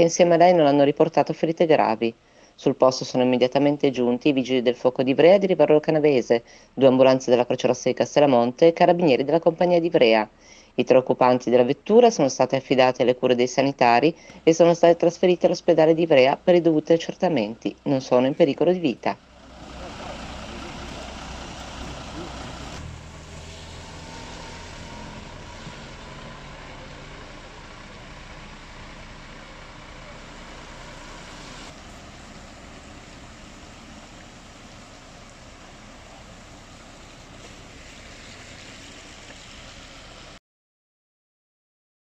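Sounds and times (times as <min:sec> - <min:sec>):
diesel engine idling: 0:19.2 - 0:40.4
outdoor hiss: 0:19.2 - 0:40.4.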